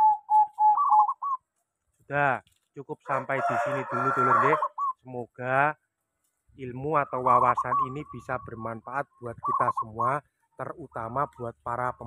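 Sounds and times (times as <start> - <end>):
dove cooing: 0.0 - 1.5, 3.4 - 5.1, 7.0 - 10.2.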